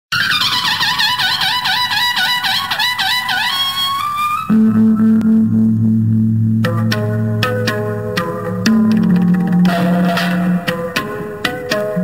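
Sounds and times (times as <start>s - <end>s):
warbling high instrumental tone: 4.4s - 10.9s.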